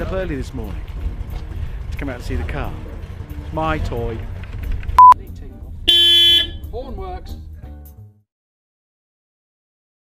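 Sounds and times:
car horn honking: 5.9s - 6.6s.

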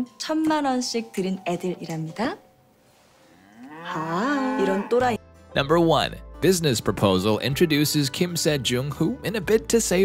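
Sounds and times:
woman's rising vocal sound: 3.4s - 5.0s.

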